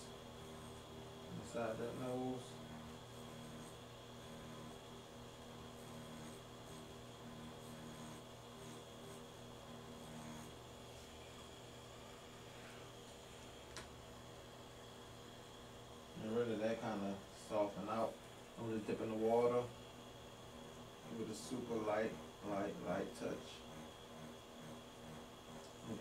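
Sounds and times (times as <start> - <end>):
tattoo machine humming: 0.0 - 26.0.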